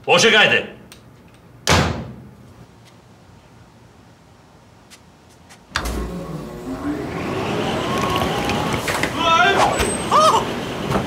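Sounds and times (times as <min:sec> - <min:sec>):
hair dryer blowing: 0:05.9 - 0:09.0
man crying and wailing: 0:09.2 - 0:10.6.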